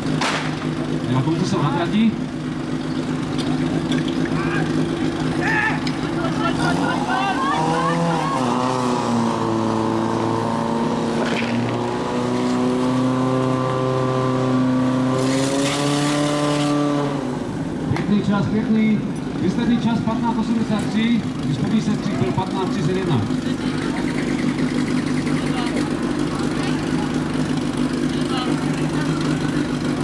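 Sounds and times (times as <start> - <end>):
voices shouting: 4.2 - 9.3
pump engine running hard: 21.2 - 30.0.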